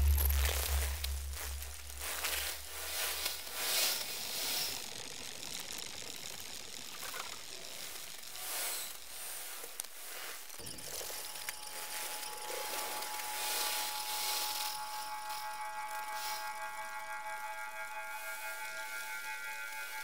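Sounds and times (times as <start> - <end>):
deep low hum: 0.0 - 3.1
noisy electronic textures: 0.0 - 20.0.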